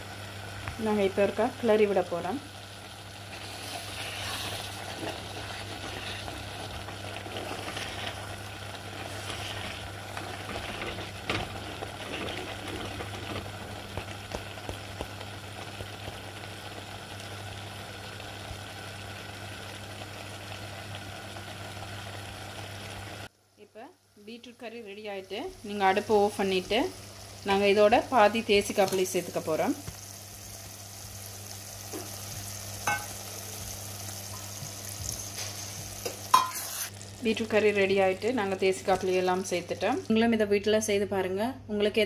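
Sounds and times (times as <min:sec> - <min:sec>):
curry simmering and sizzling: 0:00.0 - 0:40.2
wooden spoon scraping pot: 0:03.3 - 0:13.6.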